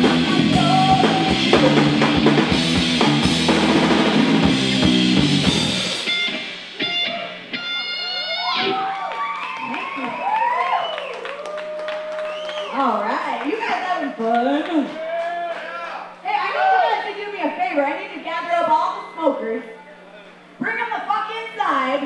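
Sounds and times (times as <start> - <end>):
live metal band playing: 0.0 - 8.8
low steady stage hum: 0.0 - 22.0
audience shouts and whoops: 7.0 - 12.9, 14.9 - 17.1.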